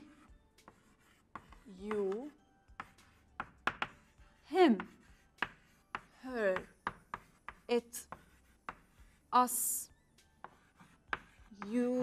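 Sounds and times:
chalk scratching on blackboard: 0.0s - 9.8s, 10.4s - 12.0s
chalk tapping on board: 0.2s - 9.2s, 10.4s - 12.0s.

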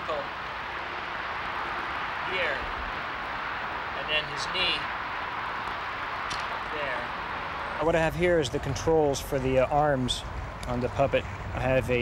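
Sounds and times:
outdoor background hiss: 0.0s - 12.0s
man speaking: 7.8s - 12.0s.

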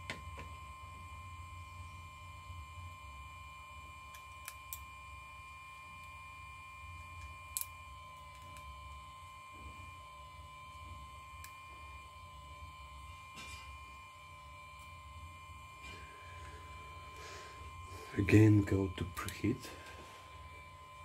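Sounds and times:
faint electrical hum with whine: 0.0s - 21.0s.

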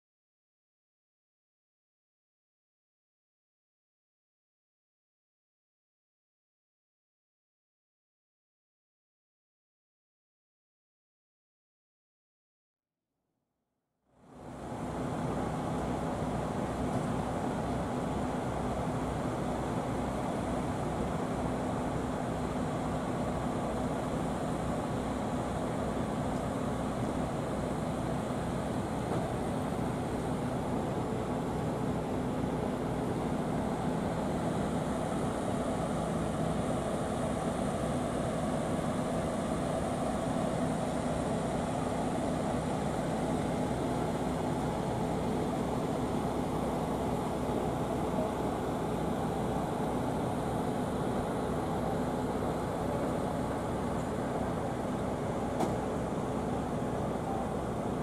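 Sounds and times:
ship engines droning: 14.4s - 58.0s.

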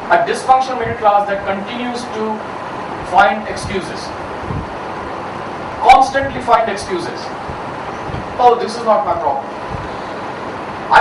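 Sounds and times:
man's amplified talk: 0.0s - 4.2s, 5.8s - 7.4s, 8.4s - 9.5s
steady room hiss: 0.0s - 11.0s.

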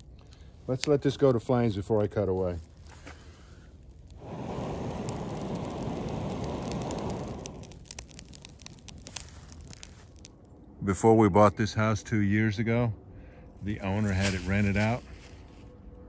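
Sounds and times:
burning leaves crackling: 0.0s - 10.7s, 13.3s - 15.9s
tinder flaring into flame: 1.0s - 10.4s.

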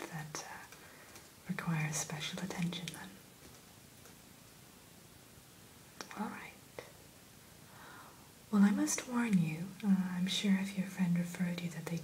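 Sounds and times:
breath: 7.7s - 8.3s.

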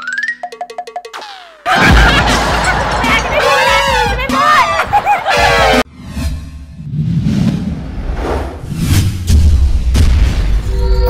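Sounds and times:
music: 0.0s - 5.9s.

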